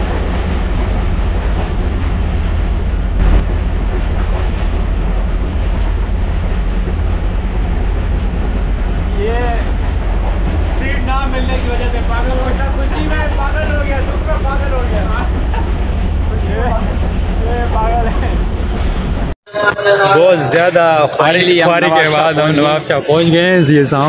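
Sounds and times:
train wheels clattering: 0.0s - 19.3s
train wheels rumbling on rails: 0.0s - 19.4s.

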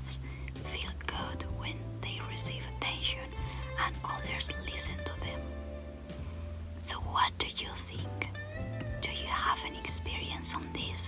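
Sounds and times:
soft whispery speech: 0.0s - 5.4s, 6.8s - 8.4s, 9.0s - 11.0s.

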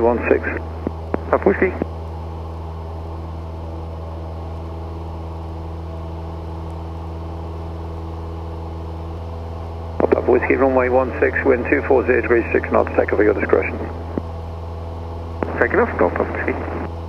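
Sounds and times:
propeller plane engine droning: 0.0s - 17.0s.

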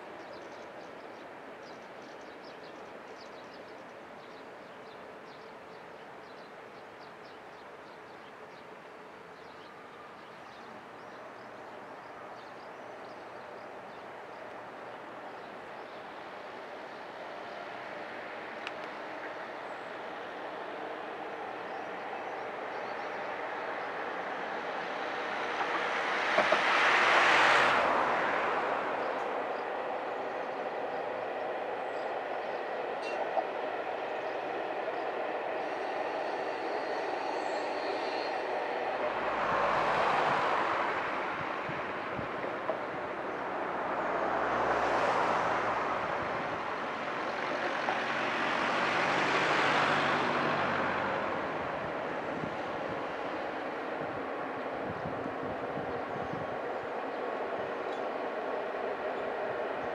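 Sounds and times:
trains rolling over bridge: 0.0s - 59.9s.

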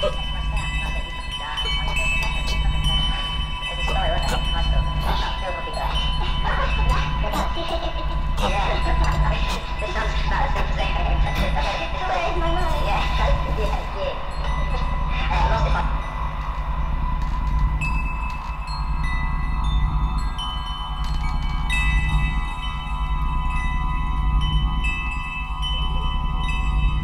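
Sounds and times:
high chime-like bell notes: 0.0s - 27.0s
low sustained drone: 0.0s - 27.0s.

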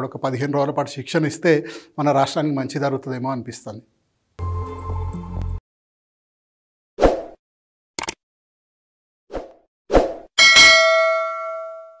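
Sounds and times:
bell-like chime: 10.4s - 12.0s.

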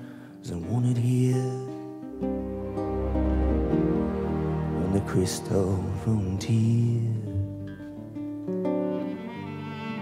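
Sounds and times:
acoustic guitar: 0.0s - 10.0s
orchestral strings sustained notes: 2.0s - 7.6s.

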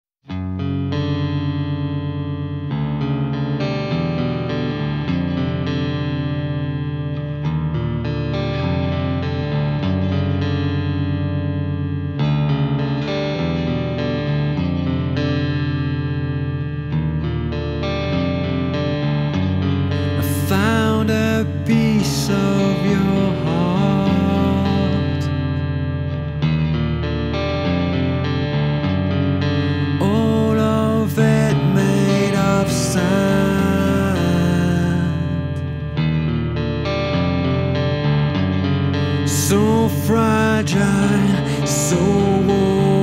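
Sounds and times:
bass guitar: 0.3s - 43.0s
electric guitar chords: 0.3s - 43.0s.

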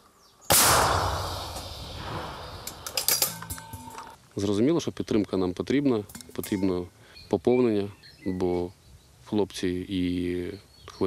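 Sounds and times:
artillery gun boom: 0.5s - 4.2s.

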